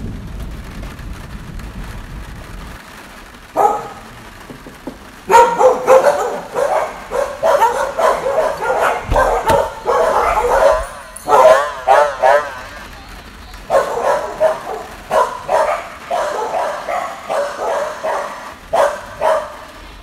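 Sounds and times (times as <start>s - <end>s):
dog whining and yipping: 5.3s - 12.7s.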